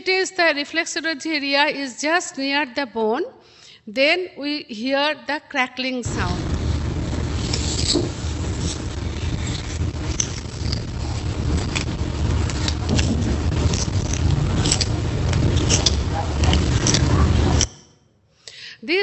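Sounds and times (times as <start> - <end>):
low hum and hiss: 6.1 - 17.8.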